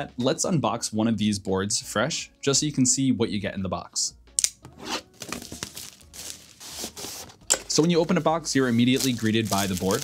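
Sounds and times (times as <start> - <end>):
plastic shrink wrap tearing: 5.2 - 7.3, 8.6 - 10.0.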